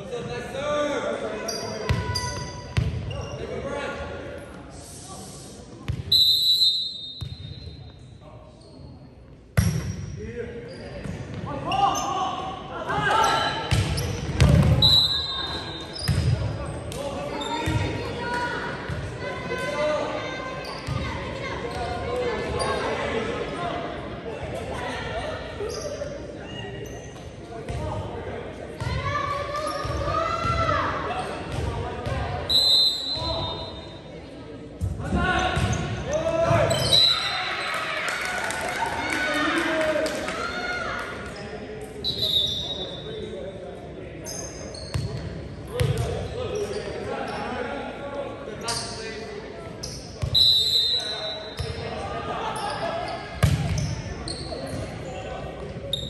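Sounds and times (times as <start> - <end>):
shoes squeaking on court: 9.6 - 12.2, 13.2 - 18.0, 44.2 - 47.6, 52.6 - 56.0.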